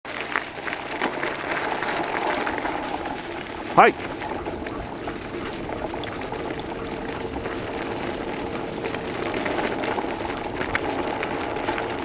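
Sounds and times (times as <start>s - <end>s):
scooter wheels rolling on gravel: 0.0s - 12.0s.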